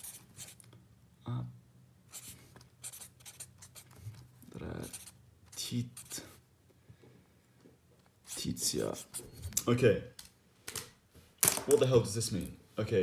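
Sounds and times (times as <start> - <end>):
pen scratching on paper: 0.0 - 0.6, 2.1 - 4.2, 4.8 - 6.4, 8.2 - 9.4.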